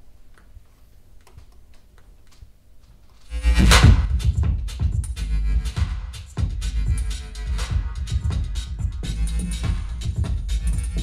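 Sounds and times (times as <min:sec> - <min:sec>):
heavy bass music through pa system: 0:03.3 - 0:11.0.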